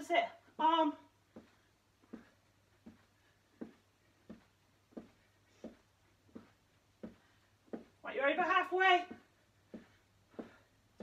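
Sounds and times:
soft footfalls on carpet: 0.5 - 11.0.

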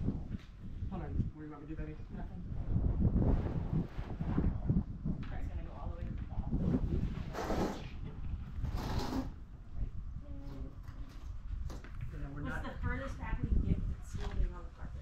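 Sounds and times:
wind rumbling on microphone: 0.0 - 15.0.

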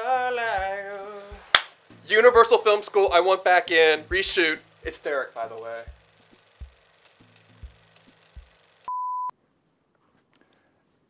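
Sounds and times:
faint hiss: 0.0 - 8.9.

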